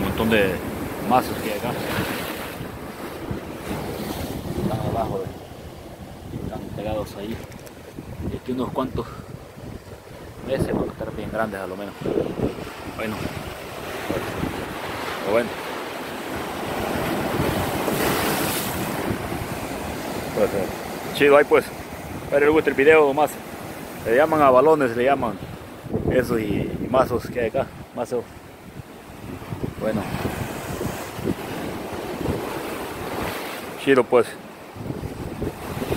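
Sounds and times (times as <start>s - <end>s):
wind buffeting microphone: 0.0s - 24.2s, 25.3s - 27.9s, 28.5s - 33.6s, 34.6s - 35.9s
surf washing against rocks: 0.0s - 35.9s.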